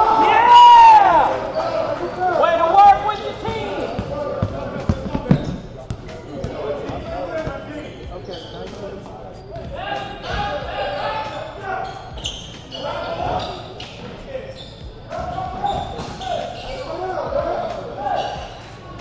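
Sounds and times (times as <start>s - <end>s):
indistinct shouting: 0.0s - 4.0s
sneakers squeaking: 1.2s - 19.0s.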